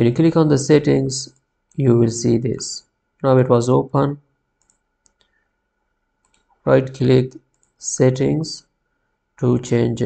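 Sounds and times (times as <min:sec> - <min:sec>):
computer mouse clicking: 0:04.6 - 0:05.4, 0:06.2 - 0:06.6, 0:07.4 - 0:07.8.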